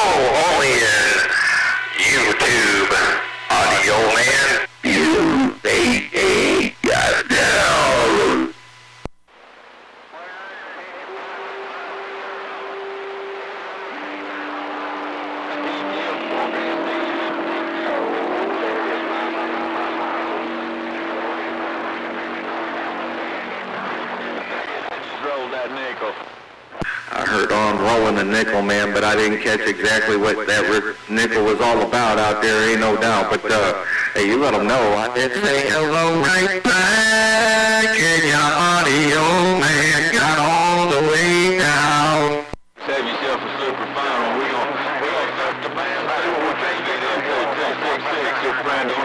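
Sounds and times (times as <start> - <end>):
garbled radio transmission: 0.0 - 9.1, 9.8 - 49.0
radio static hiss: 0.0 - 49.0
low hum: 11.1 - 25.2
radio click: 17.5 - 27.2.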